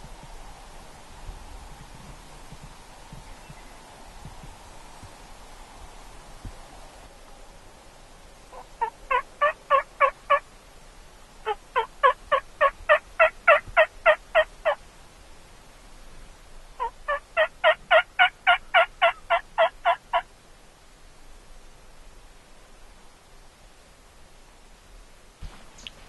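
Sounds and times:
turkey yelps: 0:08.5 - 0:10.4, 0:11.4 - 0:14.8, 0:16.8 - 0:20.2.

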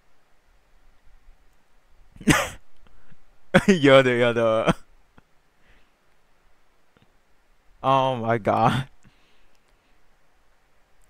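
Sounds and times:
man bursting into laughter: 0:02.2 - 0:02.6.

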